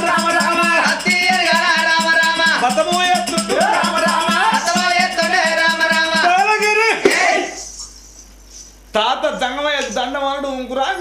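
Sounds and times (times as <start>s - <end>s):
man shouting dramatically: 3.3s - 4.8s.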